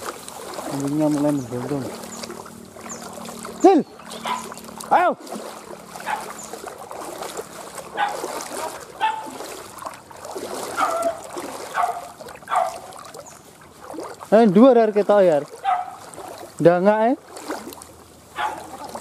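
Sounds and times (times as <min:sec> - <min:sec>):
water splashing: 0:00.0 - 0:19.0
dogs barking and yelping: 0:04.0 - 0:04.6, 0:06.0 - 0:06.5, 0:07.9 - 0:09.4, 0:10.7 - 0:13.0, 0:15.6 - 0:16.0, 0:18.3 - 0:18.9.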